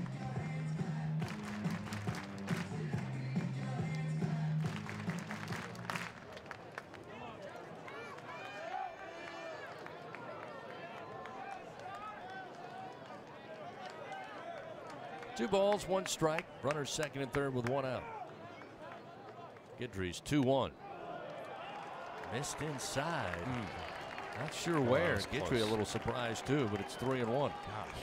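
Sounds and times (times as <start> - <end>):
music over loudspeakers: 0.0 - 5.8
crowd murmur: 22.3 - 28.0.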